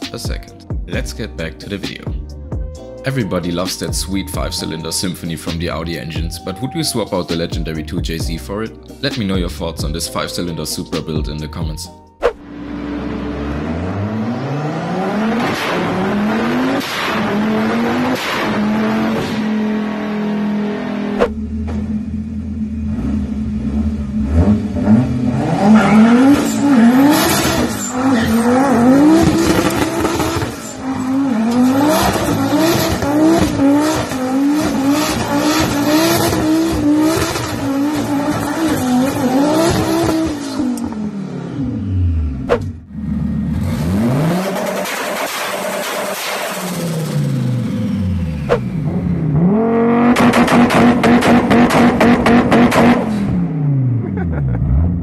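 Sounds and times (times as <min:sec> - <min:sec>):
car engine revving hard: 0:12.4 - 0:55.0
tyres squealing: 0:25.6 - 0:40.4
engine popping against rev limiter: 0:29.0 - 0:30.6, 0:50.0 - 0:53.1.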